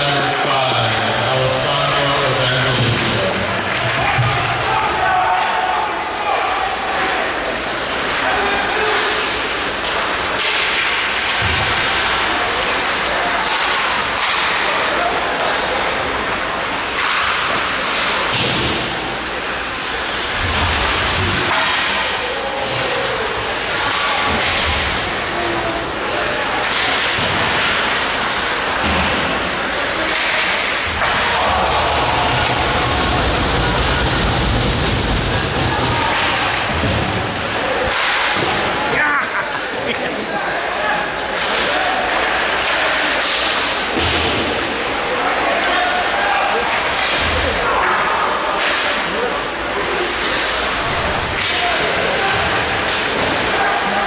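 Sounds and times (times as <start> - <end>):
hockey sticks and puck clacking: 0.0 - 5.7, 7.7 - 39.0, 40.8 - 54.0.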